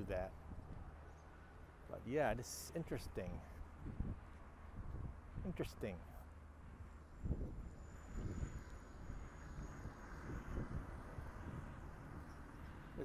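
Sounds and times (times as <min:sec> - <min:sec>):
wind on microphone: 0:00.0 - 0:01.0, 0:03.6 - 0:05.7, 0:06.6 - 0:13.0
distant highway traffic: 0:00.0 - 0:13.0.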